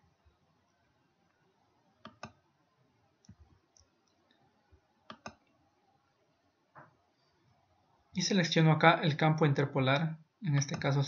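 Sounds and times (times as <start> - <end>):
computer mouse clicks: 2.0 - 2.4, 5.0 - 5.6.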